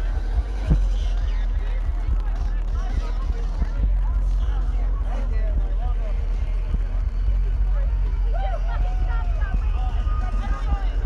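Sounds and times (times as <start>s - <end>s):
crowd talking and calling out: 0.0s - 11.0s
loud electronic music: 0.0s - 11.0s.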